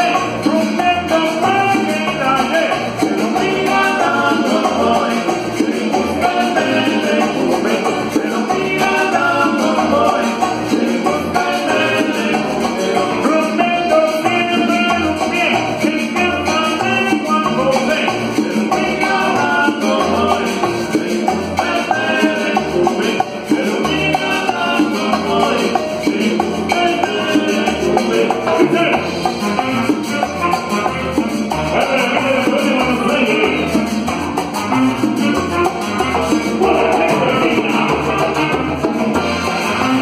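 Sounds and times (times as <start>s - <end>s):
live band playing cumbia: 0.0s - 40.0s.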